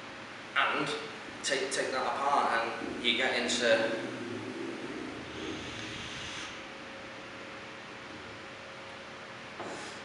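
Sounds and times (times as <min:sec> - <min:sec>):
faint room hum: 0:00.0 - 0:10.0
hiss of air through vape: 0:02.8 - 0:06.8.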